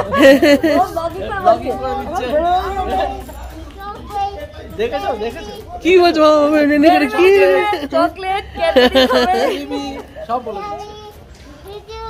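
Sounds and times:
adults talking quietly: 0.0 - 12.0.

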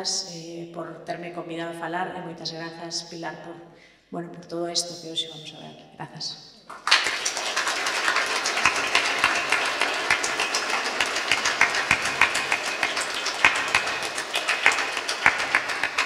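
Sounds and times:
audience applauding: 6.7 - 16.0.

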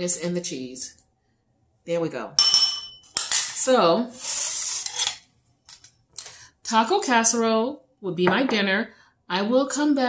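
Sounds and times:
metal spoon scraping metal pan: 4.1 - 5.2.

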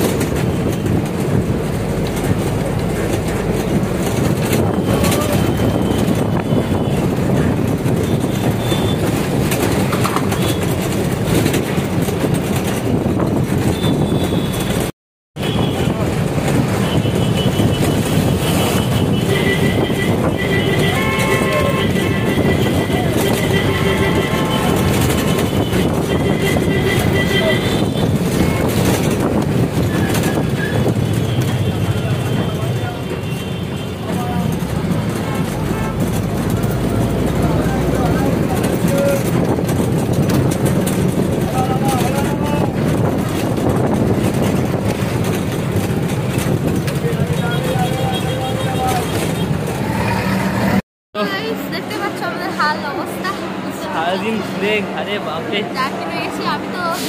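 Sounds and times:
road traffic din: 0.0 - 57.0
people's voices: 2.1 - 7.9, 18.4 - 29.2, 29.9 - 45.1, 46.8 - 57.0
vehicle horns: 4.1 - 11.5, 13.6 - 39.8, 46.7 - 50.8.

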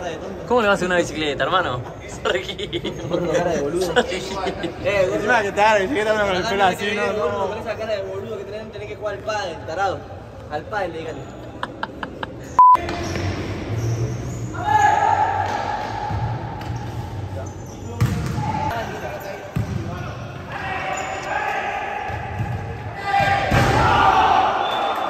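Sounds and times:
players shouting: 20.5 - 25.0.

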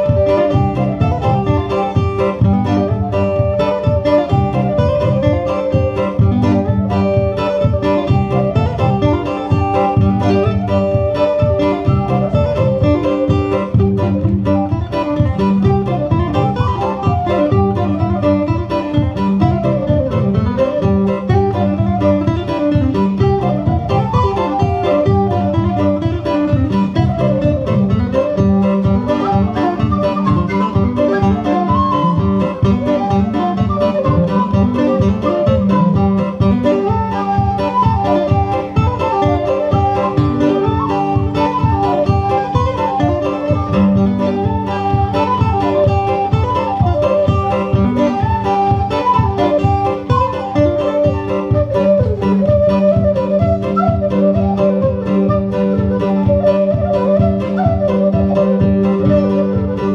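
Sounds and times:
guitar accompaniment: 0.0 - 59.9
whistle melody: 0.0 - 59.9.

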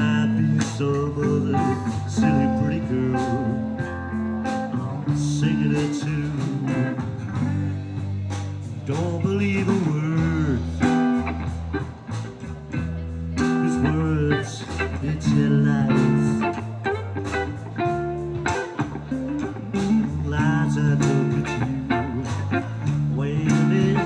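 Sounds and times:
bass guitar: 0.0 - 24.0
drums: 0.0 - 24.0
electric guitar: 0.0 - 24.0.

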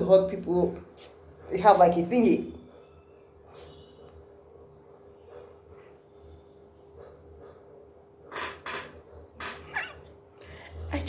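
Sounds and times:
perfume atomizer spraying: 0.9 - 1.2, 3.5 - 4.0.

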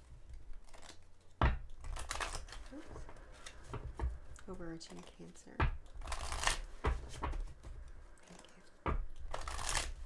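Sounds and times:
cards being riffled: 8.2 - 10.0.

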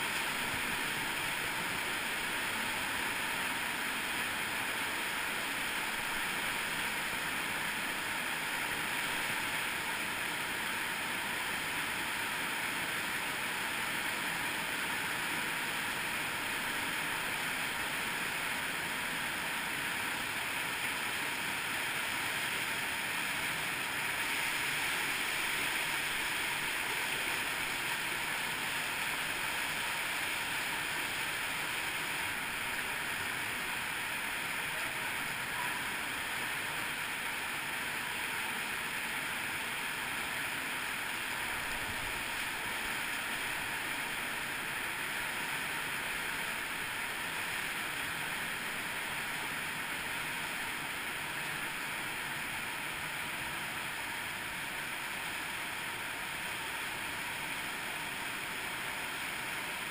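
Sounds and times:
water rushing over small waterfalls: 0.0 - 59.9.

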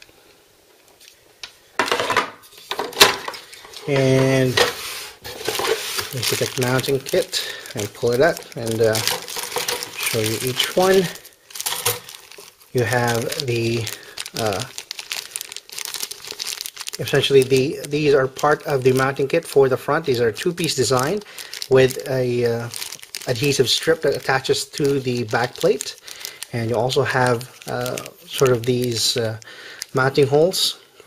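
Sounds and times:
plastic clattering and rubbing: 1.8 - 7.0, 8.4 - 10.9
plastic handling noise: 1.8 - 30.4
plastic bag crinkling: 2.6 - 30.7.

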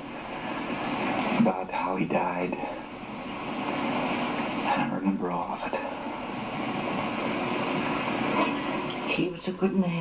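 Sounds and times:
old film soundtrack hiss: 0.0 - 10.0.

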